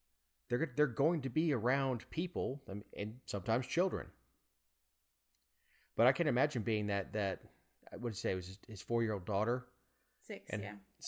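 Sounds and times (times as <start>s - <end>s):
man talking: 0.5s - 4.2s, 6.0s - 9.7s
person talking: 10.4s - 10.8s.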